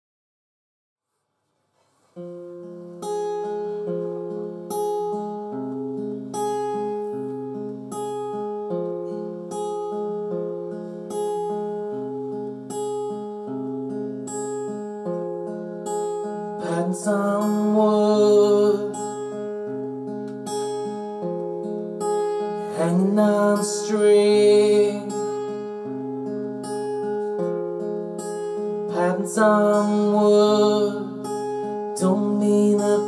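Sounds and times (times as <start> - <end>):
fingerpicked acoustic guitar: 1.1 - 33.0.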